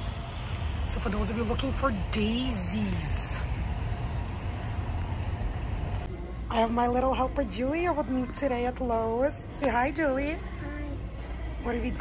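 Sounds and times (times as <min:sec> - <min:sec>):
low rumble: 0:00.0 - 0:06.6.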